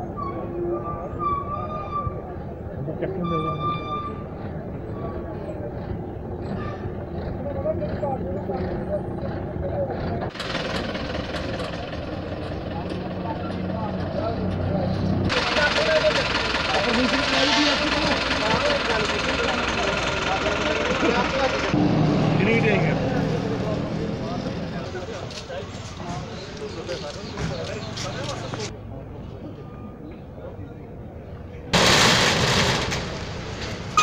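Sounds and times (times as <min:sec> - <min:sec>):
people talking: 0:00.0 - 0:10.4, 0:11.3 - 0:31.7
truck engines running: 0:00.0 - 0:34.0.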